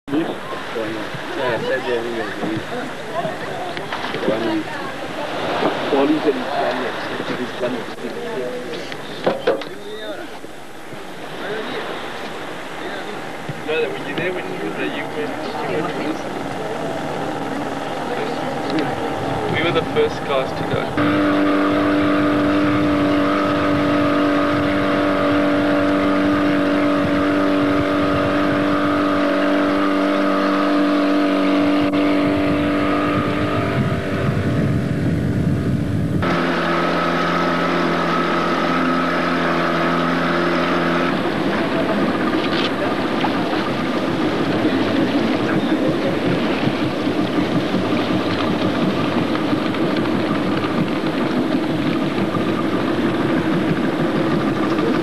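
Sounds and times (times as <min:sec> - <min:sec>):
motorboat engine running: 0:00.0 - 0:55.0
water noise: 0:00.0 - 0:55.0.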